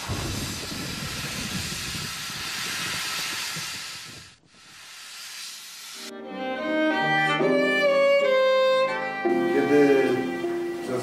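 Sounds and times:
loud rushing hiss: 0.0s - 7.2s.

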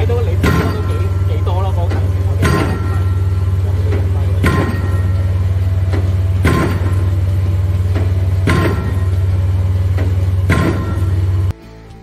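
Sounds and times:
loud engine drone: 0.0s - 11.6s
pile driver hammer clanging: 0.0s - 11.6s.

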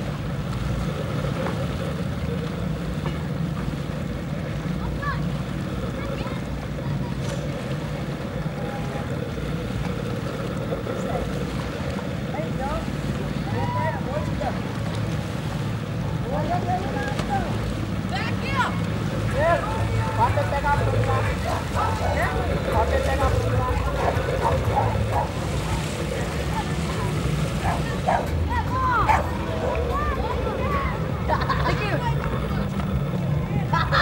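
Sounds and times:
children shouting: 23.7s - 32.6s.

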